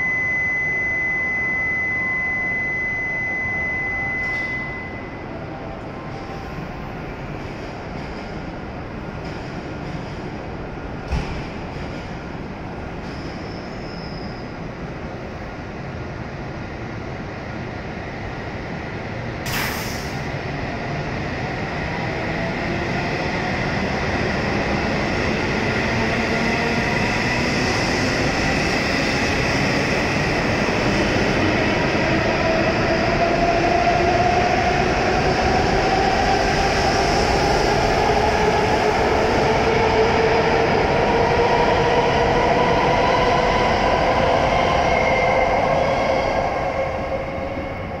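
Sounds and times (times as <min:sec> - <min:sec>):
train running noise: 0:04.1 - 0:48.0.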